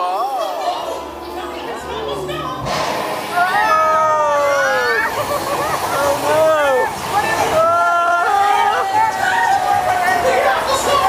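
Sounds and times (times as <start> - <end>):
rush of splashing water: 2.7 - 11.0.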